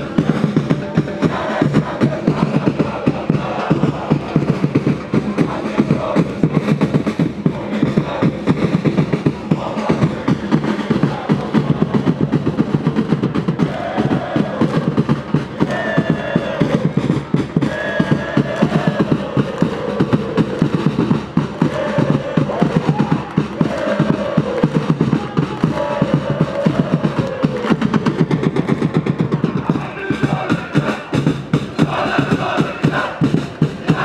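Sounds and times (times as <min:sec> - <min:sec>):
fast steady drumming: 0:00.0 - 0:34.0
stadium crowd chanting: 0:00.0 - 0:34.0.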